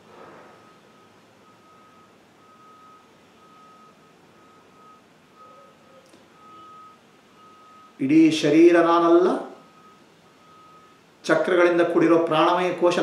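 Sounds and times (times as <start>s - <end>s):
faint electronic beeping: 0.6s - 8.3s, 9.1s - 11.1s.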